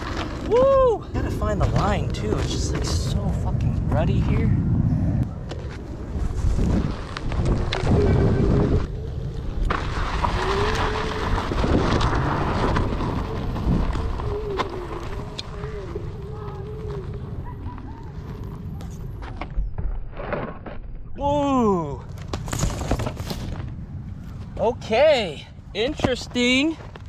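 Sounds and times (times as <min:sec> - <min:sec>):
electric board rumble and buffeting: 0:00.0 - 0:17.5.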